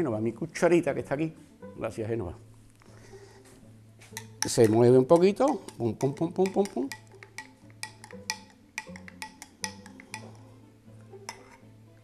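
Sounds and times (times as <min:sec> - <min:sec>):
soft background music: 0:00.0 - 0:12.0
teaspoon clinking against a glass: 0:04.2 - 0:10.6, 0:11.2 - 0:11.7.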